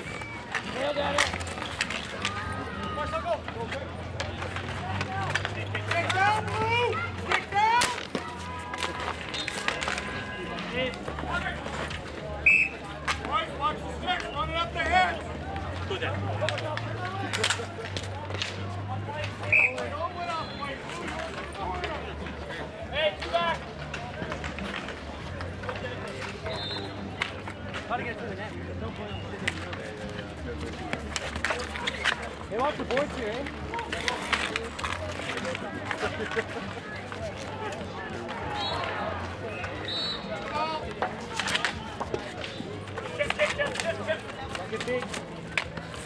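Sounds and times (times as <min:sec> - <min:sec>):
hockey sticks clacking: 0:00.0 - 0:46.0.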